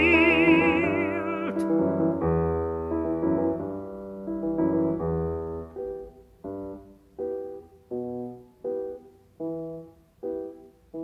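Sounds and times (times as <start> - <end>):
piano playing detached chords: 0.0 - 11.0.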